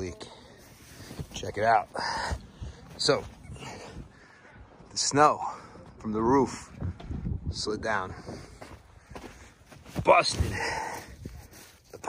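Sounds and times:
footsteps crunching in snow: 8.2 - 12.0.

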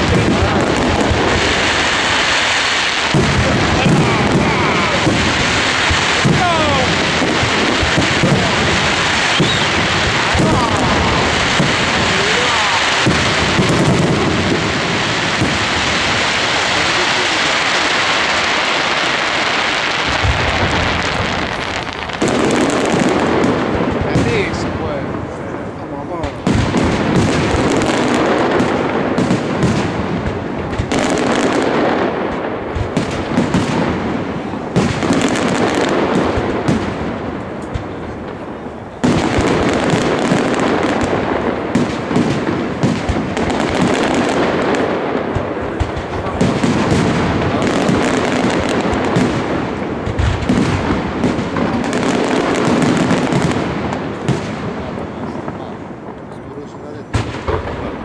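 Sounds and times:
firework shells bursting: 0.0 - 58.0.

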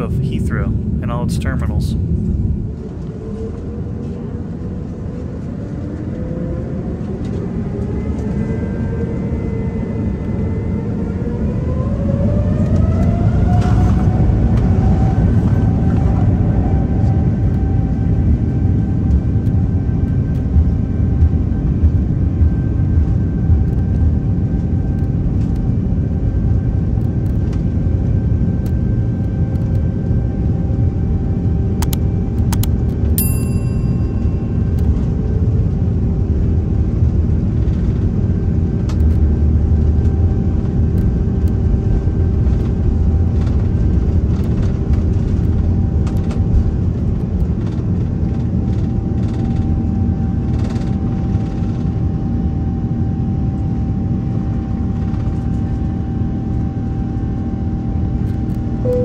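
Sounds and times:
jet engines rumbling in cabin: 0.0 - 59.0
short high ringing tone: 33.2 - 35.2.

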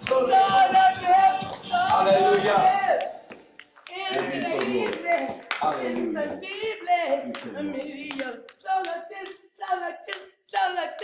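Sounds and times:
person singing: 0.0 - 3.2
hand claps: 0.0 - 11.0.

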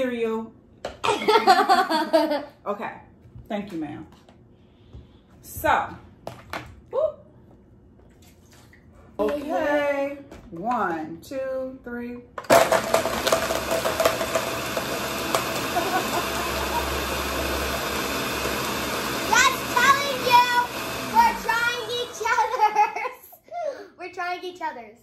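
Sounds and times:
blender whining: 12.5 - 22.9.

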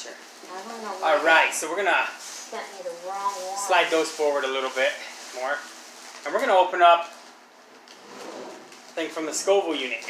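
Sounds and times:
plastic mailer bag crinkling: 0.0 - 7.4.

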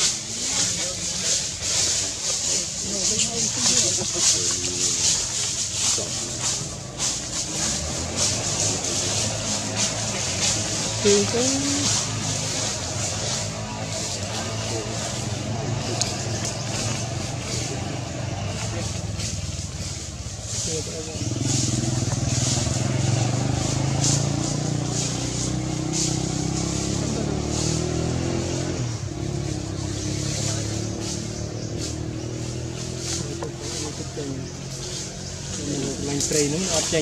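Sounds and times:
vehicle engine running: 0.0 - 37.0.

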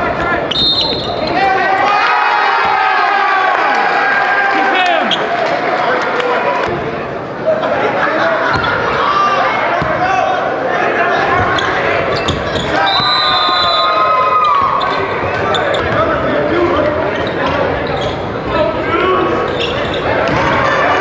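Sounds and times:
crowd voices and shouts echoing: 0.0 - 21.0
basketball bouncing on gym floor: 9.8 - 10.0.

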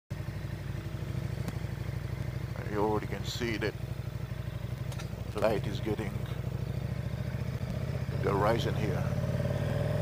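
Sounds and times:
motorcycle engine running: 0.1 - 10.0.

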